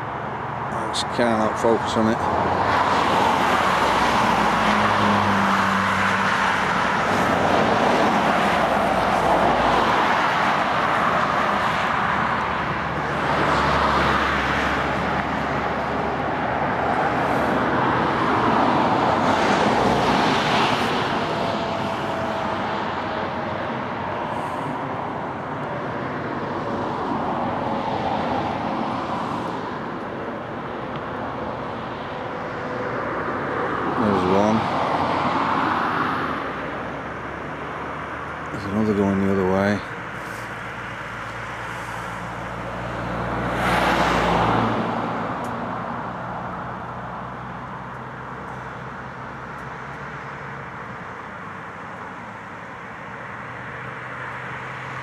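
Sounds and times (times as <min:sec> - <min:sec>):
road traffic noise: 0:00.0 - 0:55.0.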